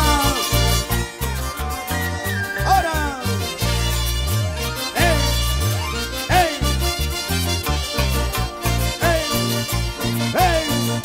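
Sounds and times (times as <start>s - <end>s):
brass and string band playing: 0.0s - 11.0s
guitars: 0.0s - 11.0s
pulsing bass line: 0.0s - 11.0s
trumpets: 0.0s - 11.0s.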